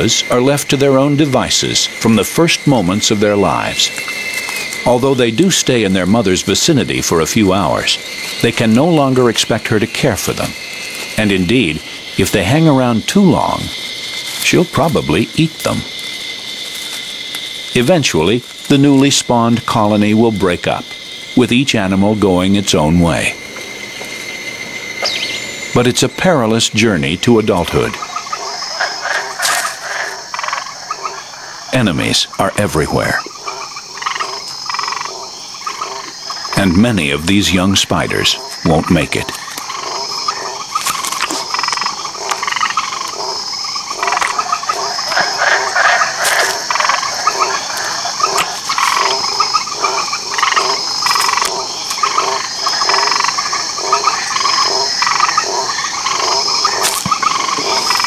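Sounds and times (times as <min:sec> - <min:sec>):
frogs chirping: 0:00.0 - 0:58.0
insects trilling: 0:00.0 - 0:58.0.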